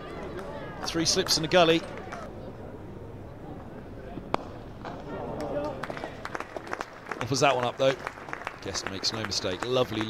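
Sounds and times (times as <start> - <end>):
light applause: 4.8 - 10.0.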